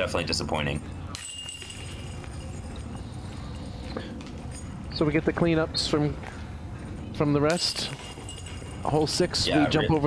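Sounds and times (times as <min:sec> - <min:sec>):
low outdoor background: 0:00.0 - 0:10.0
metallic chain jingle: 0:00.4 - 0:05.0, 0:07.5 - 0:09.9.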